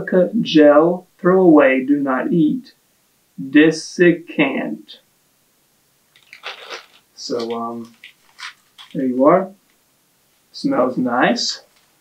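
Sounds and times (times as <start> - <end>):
small packet crinkling: 6.1 - 9.8.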